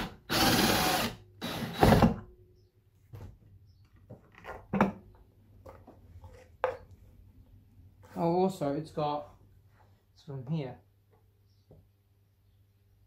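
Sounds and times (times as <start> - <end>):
plastic knocks and clunks: 4.0 - 5.1.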